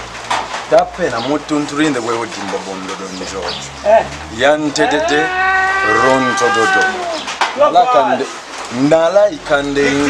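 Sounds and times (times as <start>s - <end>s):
man speaking: 0.8s - 10.0s.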